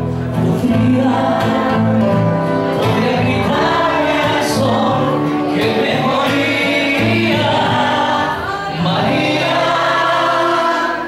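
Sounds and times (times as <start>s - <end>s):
acoustic guitar: 0.0s - 11.0s
two men singing: 0.3s - 11.0s.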